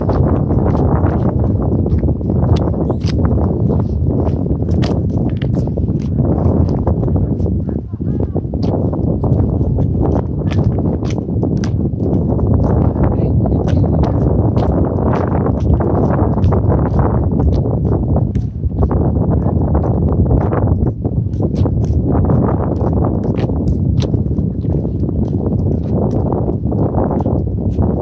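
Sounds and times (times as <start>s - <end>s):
footsteps on concrete: 0.0s - 28.0s
wind buffeting microphone: 0.0s - 28.0s.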